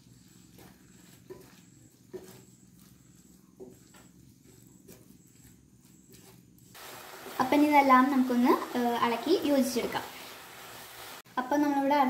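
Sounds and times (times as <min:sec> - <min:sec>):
spatula scraping a pan: 0:00.0 - 0:11.2.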